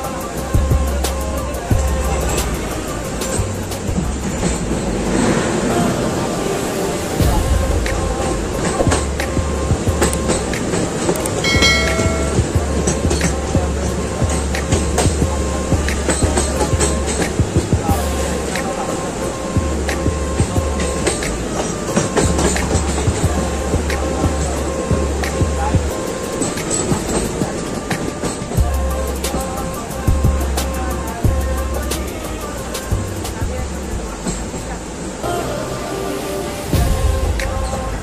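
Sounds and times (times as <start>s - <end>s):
wheels clicking over rail joints: 0.0s - 35.2s
train wheels rumbling on rails: 0.0s - 35.3s
background music: 0.0s - 38.0s
short steady tone: 11.4s - 12.6s.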